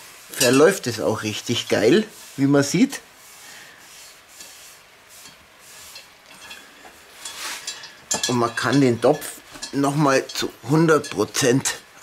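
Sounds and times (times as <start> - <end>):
sponge wiping inside a pot: 0.0 - 10.6.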